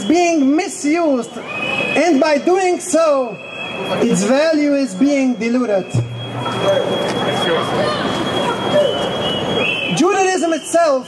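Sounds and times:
city street noise: 0:00.0 - 0:11.0
thin high-pitched tone: 0:05.8 - 0:09.3.

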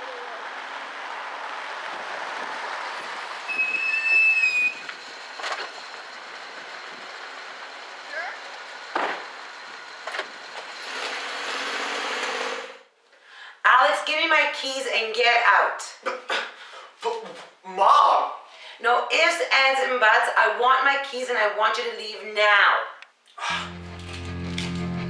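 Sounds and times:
brake squeal: 0:03.4 - 0:12.3.

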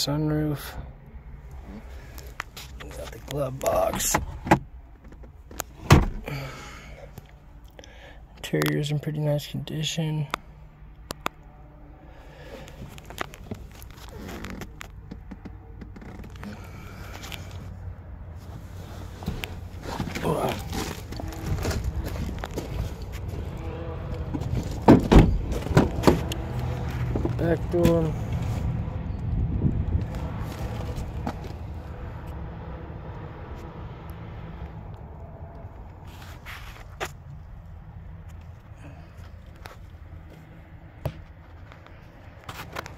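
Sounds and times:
car engine idling: 0:10.3 - 0:32.4.

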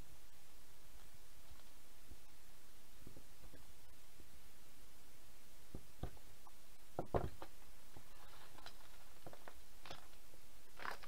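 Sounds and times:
wires rustling: 0:07.1 - 0:11.0.

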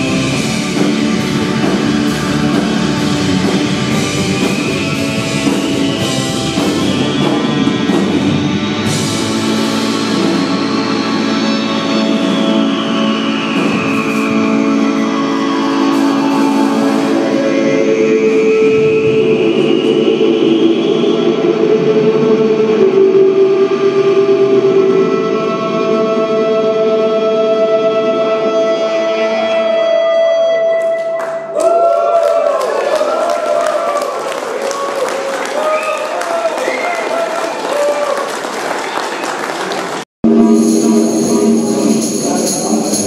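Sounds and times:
electric guitar droning: 0:00.0 - 0:31.4, 0:40.2 - 0:43.0
keyboard sustained tones: 0:00.0 - 0:31.5, 0:40.2 - 0:43.0
voices cheering: 0:12.7 - 0:17.8, 0:31.2 - 0:40.0
audience applauding: 0:30.9 - 0:40.1.

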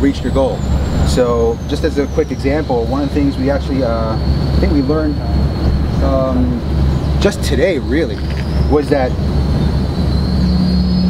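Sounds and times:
faint high whine: 0:00.0 - 0:11.0
motors droning: 0:00.0 - 0:11.0.

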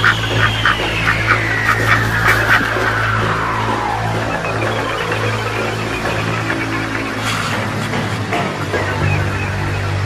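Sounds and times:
soundtrack music with low drone: 0:00.0 - 0:10.0.

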